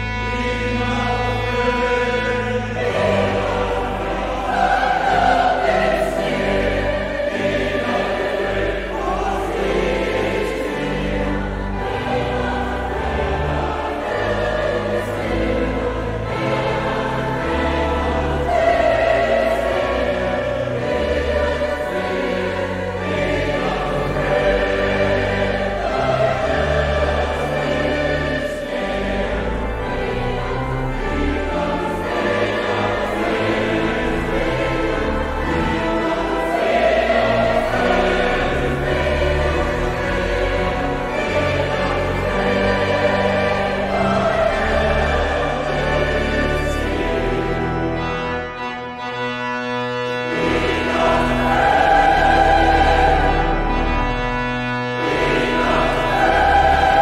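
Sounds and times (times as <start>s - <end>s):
large choir singing: 0.0s - 57.0s.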